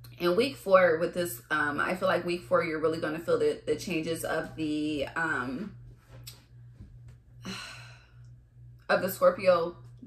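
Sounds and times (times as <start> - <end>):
steady low hum: 0.0 - 10.0
woman's voice: 0.1 - 5.8, 8.9 - 10.0
woman sighing: 7.4 - 8.1.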